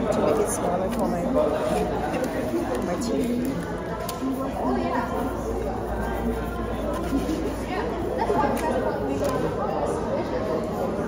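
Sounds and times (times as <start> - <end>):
background chatter of people: 0.0 - 11.0.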